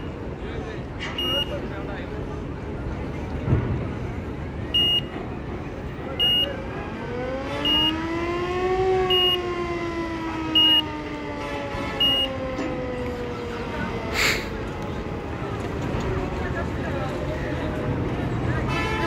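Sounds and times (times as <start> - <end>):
vehicle reversing alarm beeping: 1.1 - 1.8, 4.7 - 5.2, 6.1 - 6.6, 7.6 - 8.2, 9.0 - 11.0, 11.9 - 13.0.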